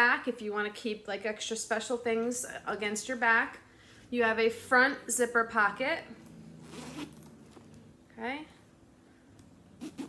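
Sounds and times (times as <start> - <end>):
metal zipper being pulled open: 6.2 - 7.9, 9.8 - 10.0.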